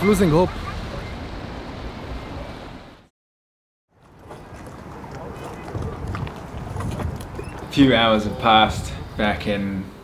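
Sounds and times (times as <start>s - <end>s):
wind rumbling on microphone: 4.0s - 10.0s.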